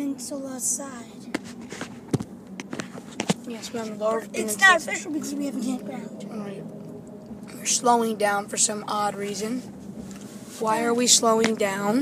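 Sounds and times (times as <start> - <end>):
car cabin road noise: 0.0 - 12.0.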